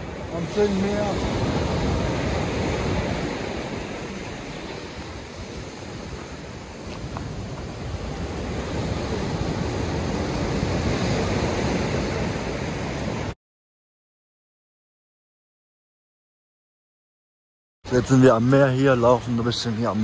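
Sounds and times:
sea surf breaking over rocks: 0:00.0 - 0:13.4.

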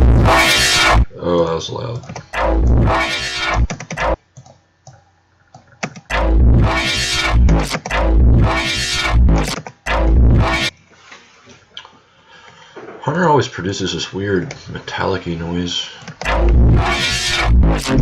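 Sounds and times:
distorted synth bass notes: 0:00.0 - 0:01.1, 0:02.3 - 0:04.2, 0:06.1 - 0:10.7, 0:16.2 - 0:18.0.

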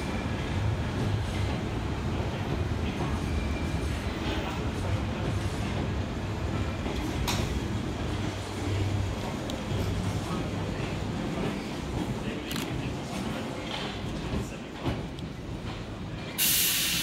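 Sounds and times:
train rumbling: 0:00.0 - 0:17.0.

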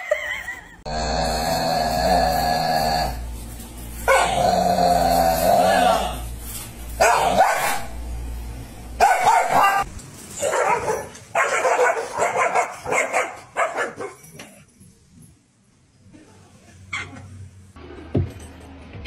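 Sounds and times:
dogs barking: 0:04.0 - 0:04.5, 0:07.0 - 0:08.0, 0:09.0 - 0:14.3.

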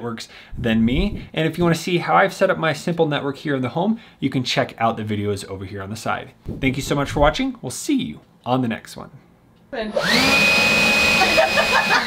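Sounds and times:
person talking: 0:00.0 - 0:09.2
machine whir spinning up: 0:09.9 - 0:12.0.

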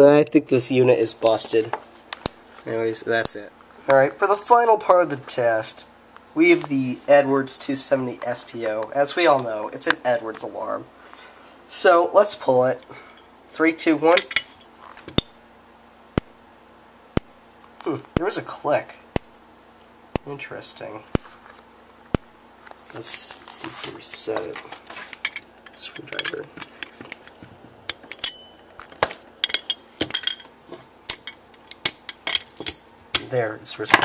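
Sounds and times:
faint high-pitched tone: 0:17.8 - 0:21.6
strobe clicks: 0:19.1 - 0:22.7.

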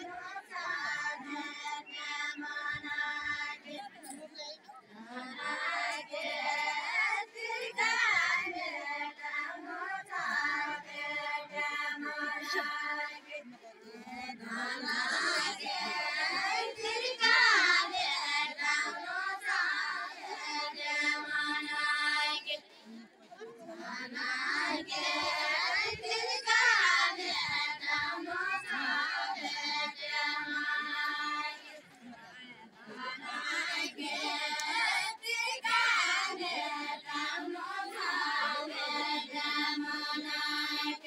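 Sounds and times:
women singing in high voices: 0:00.0 - 0:22.7, 0:23.3 - 0:41.0.

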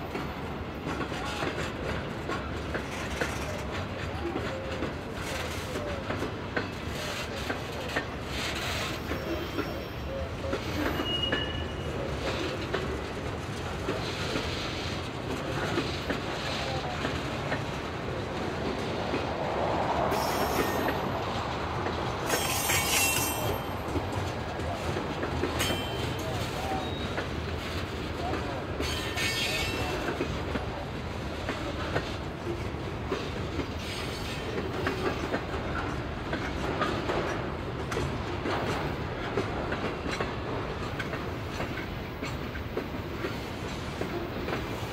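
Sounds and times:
clicking over rail joints: 0:00.0 - 0:09.8, 0:10.4 - 0:44.9
train wheels rumbling on rails: 0:00.0 - 0:44.9
high wheel squeals: 0:10.7 - 0:12.0, 0:22.3 - 0:23.9.

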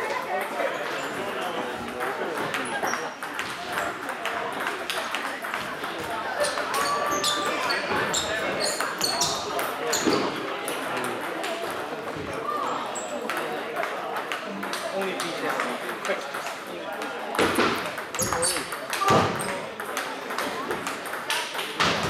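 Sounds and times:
table tennis balls clicking: 0:01.9 - 0:12.2, 0:12.8 - 0:22.0.

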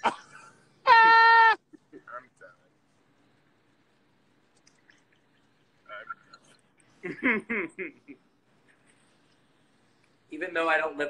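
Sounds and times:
person squealing with laughter: 0:00.9 - 0:02.0.

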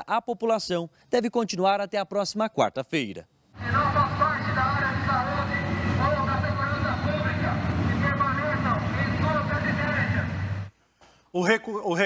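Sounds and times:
vehicle engines rumbling: 0:03.6 - 0:10.7
voice over loudspeaker: 0:03.6 - 0:10.7.

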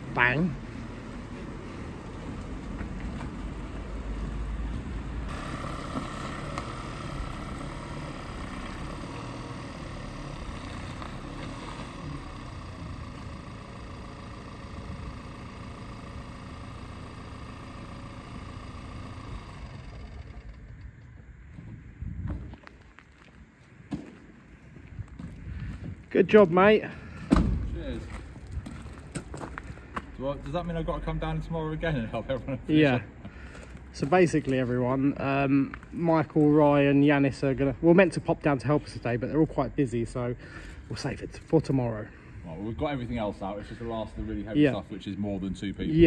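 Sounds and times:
van diesel engine running: 0:00.0 - 0:21.6.

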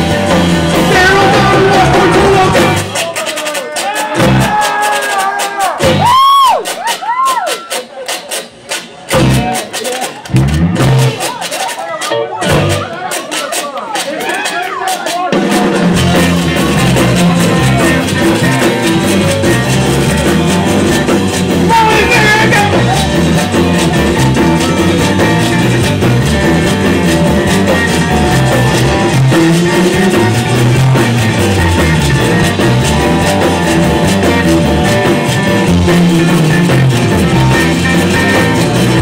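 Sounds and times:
rock band with drums and guitar: 0:00.0 - 0:39.0
low band hits: 0:10.3 - 0:11.3, 0:15.5 - 0:39.0
sliding pitched notes: 0:10.3 - 0:11.4, 0:12.0 - 0:13.1, 0:15.8 - 0:39.0.

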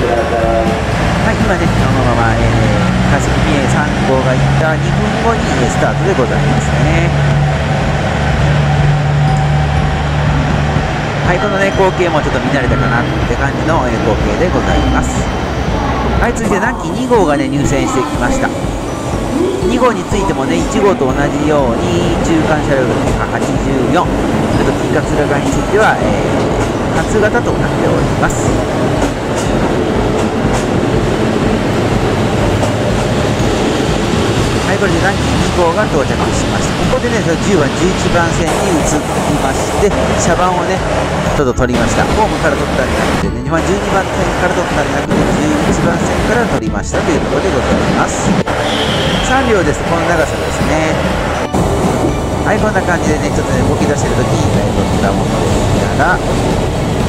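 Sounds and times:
train diesel engines droning: 0:00.0 - 0:57.0.

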